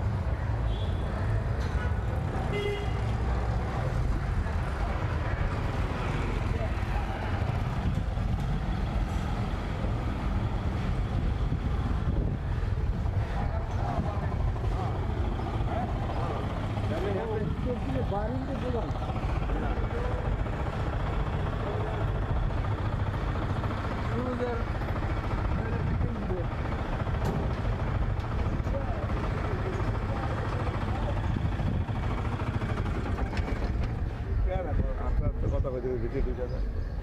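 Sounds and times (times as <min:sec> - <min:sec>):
faint voices of passersby: 0:00.0 - 0:37.0
low rumble of traffic: 0:00.0 - 0:37.0.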